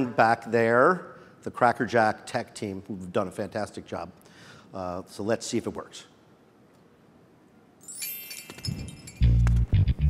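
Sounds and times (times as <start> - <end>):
high ringing chime: 7.8 - 9.5
low music notes: 9.2 - 10.0.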